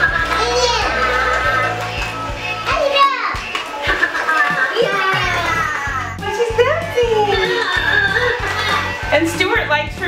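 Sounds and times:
electronic toy music: 0.0 - 9.2
high childlike toy voices: 0.3 - 3.4.

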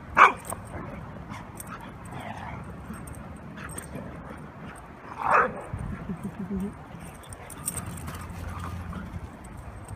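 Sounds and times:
dogs' paws galloping on grass: 3.7 - 9.9.

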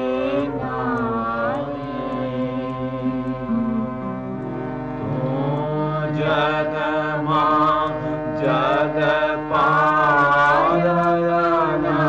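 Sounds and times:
person singing prayer song: 0.0 - 4.0, 5.0 - 12.0
instrumental drone: 0.0 - 12.0.

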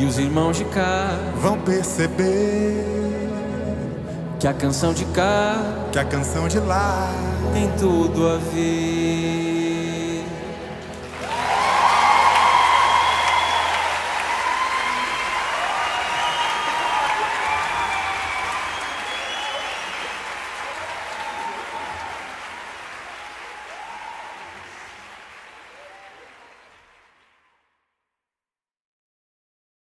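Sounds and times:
audience applauding: 10.7 - 27.6
audience cheering and shouting: 11.0 - 26.6
whistles: 11.7 - 22.3.

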